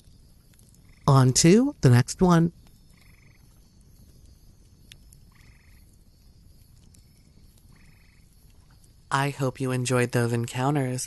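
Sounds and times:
frog trills: 0:00.8 - 0:01.4, 0:02.9 - 0:03.5, 0:05.2 - 0:06.0, 0:07.1 - 0:08.3.

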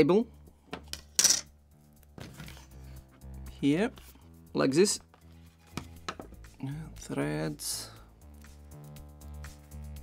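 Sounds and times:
quiet background music: 0:00.0 - 0:10.0
hard parts clacking on wooden table: 0:00.7 - 0:01.5.

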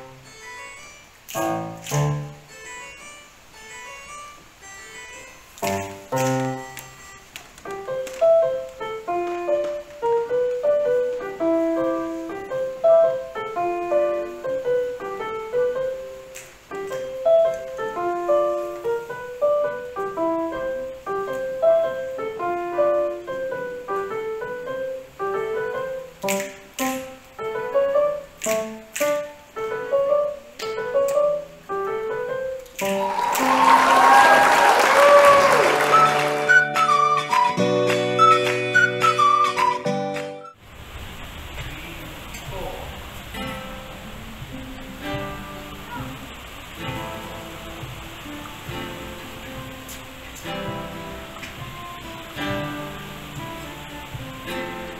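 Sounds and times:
electronic keyboard piano melody: 0:00.0 - 0:33.0, 0:35.0 - 0:40.6, 0:46.8 - 0:54.9
applause: 0:32.8 - 0:40.5.

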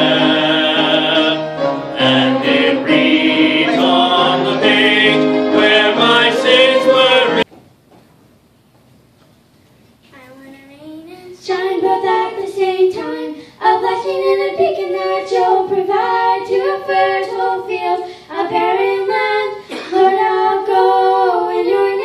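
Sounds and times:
girls singing a church song: 0:00.0 - 0:07.4, 0:11.3 - 0:22.0.

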